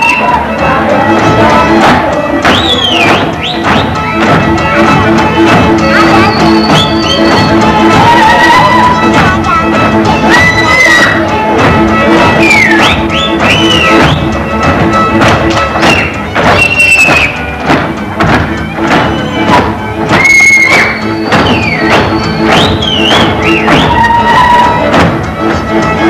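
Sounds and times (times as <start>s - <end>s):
folk string band music: 0.0s - 26.0s
feet stamping on stage floor: 1.2s - 26.0s.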